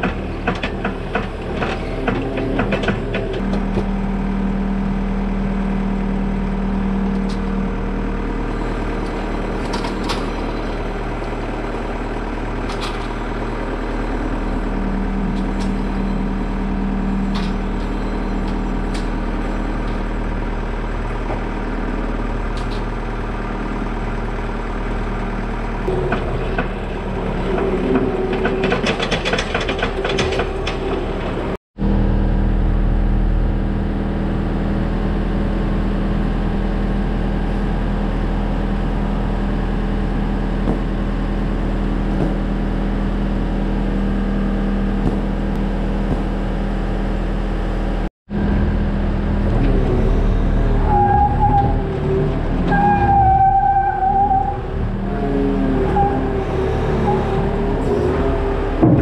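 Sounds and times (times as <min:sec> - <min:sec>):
vehicle engine idling: 0:02.8 - 0:28.9, 0:31.0 - 0:52.6
clatter and clicks: 0:25.8 - 0:31.5.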